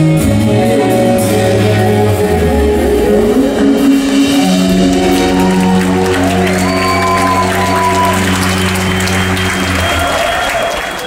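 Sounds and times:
rock band sustained chord: 0.0 - 10.6
note gliding upward in pitch: 1.6 - 9.8.

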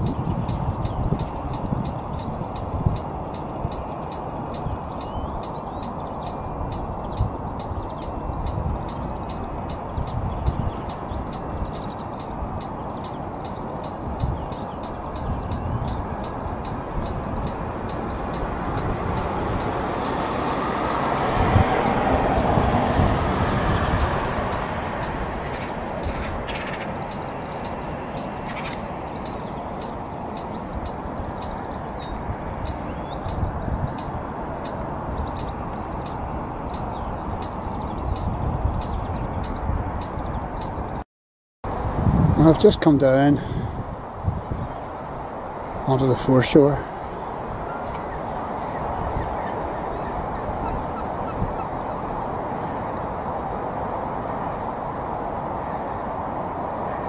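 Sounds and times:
passing vehicle rumble: 0.0 - 41.0, 41.7 - 57.0
wind buffeting microphone: 0.0 - 41.0, 41.7 - 57.0.

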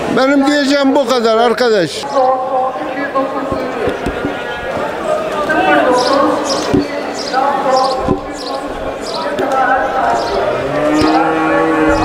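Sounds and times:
crowd chatter: 0.0 - 12.0
sharp knocks: 3.4 - 5.6, 6.5 - 7.0, 8.0 - 8.6
cow mooing: 10.0 - 12.0.

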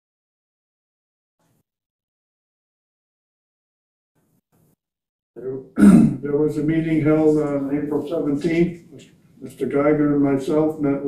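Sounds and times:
man speaking: 5.4 - 11.0
man grunting: 5.8 - 6.2.

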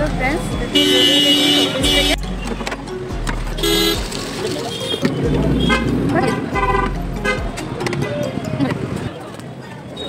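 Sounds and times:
busy street traffic: 0.0 - 10.0
vehicle horn honk: 0.7 - 2.2, 3.6 - 7.5.

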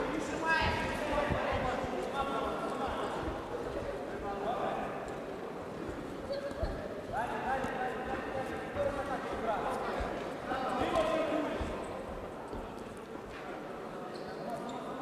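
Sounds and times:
voices calling out in a hall: 0.0 - 15.0.

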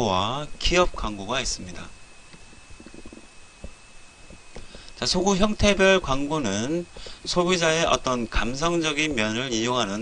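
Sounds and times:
faint recording hiss: 0.0 - 10.0
thin high whine: 0.0 - 10.0.

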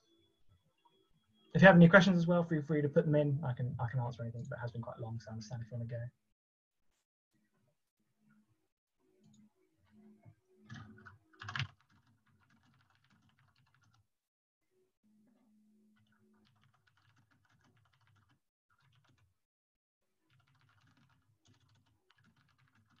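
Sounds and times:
rapid keyboard typing: 10.7 - 14.1, 16.0 - 19.4, 20.2 - 23.0.

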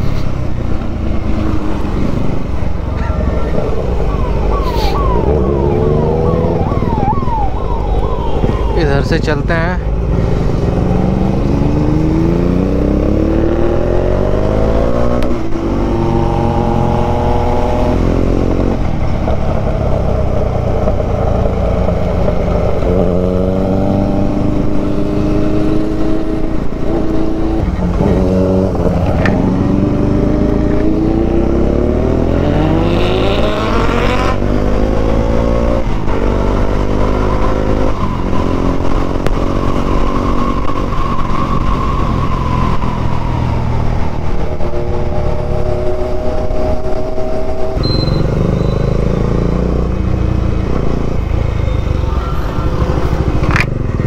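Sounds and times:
motorcycle engine accelerating: 0.0 - 8.8, 9.4 - 54.0
road and wind rush: 0.0 - 54.0.

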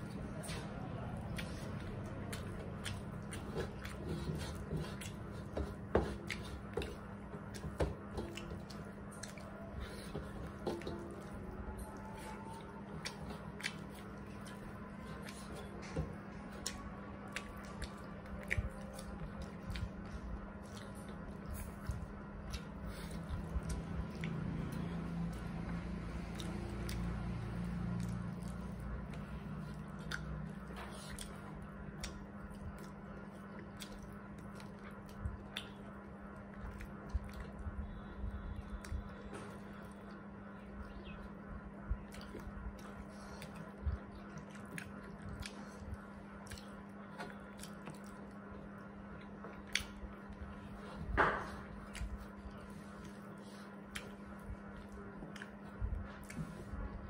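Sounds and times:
fingers mixing food on metal plates: 0.0 - 37.6
chewing: 0.0 - 57.0
steady low hum: 0.0 - 57.0.

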